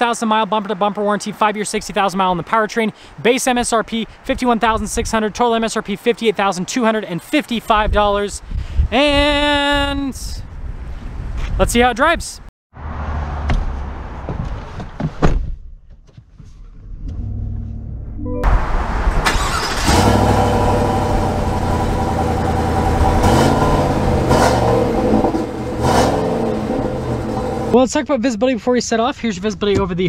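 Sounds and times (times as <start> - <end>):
truck engine starting and idling: 17.0 - 27.8.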